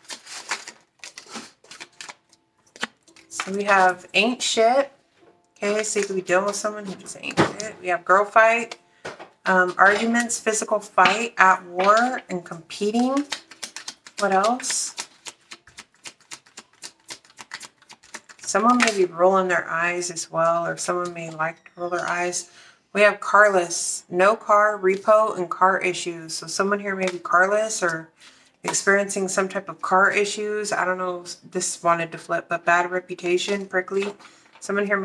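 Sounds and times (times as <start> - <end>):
cards being shuffled: 0.0 - 4.0, 12.8 - 19.1, 33.5 - 34.6.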